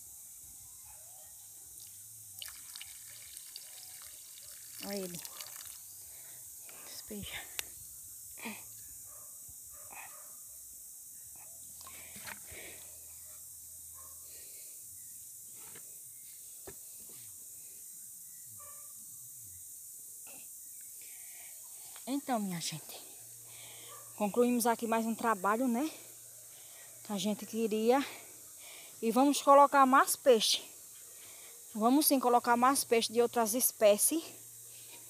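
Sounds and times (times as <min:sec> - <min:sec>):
steady high hiss: 0:00.0 - 0:35.0.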